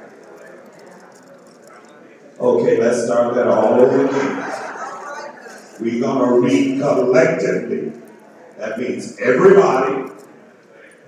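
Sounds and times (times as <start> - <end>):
congregation reading aloud: 2.4 - 11.0.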